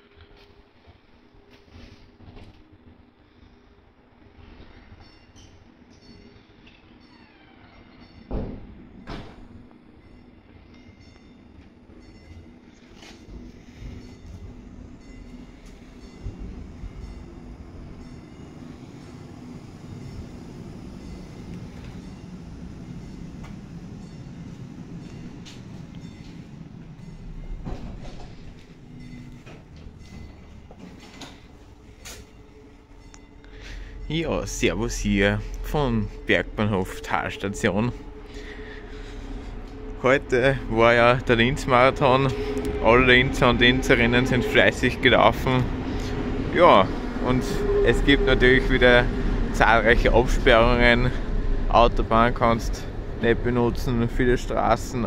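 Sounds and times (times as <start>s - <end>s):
electric tram running on rails: 0.0s - 55.0s
tram motor hum: 8.4s - 55.0s.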